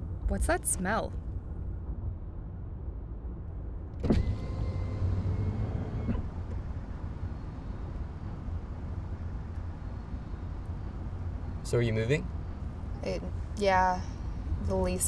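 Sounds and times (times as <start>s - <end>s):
power window motor whine: 4.0s - 10.5s
car cabin rumble: 4.0s - 15.0s.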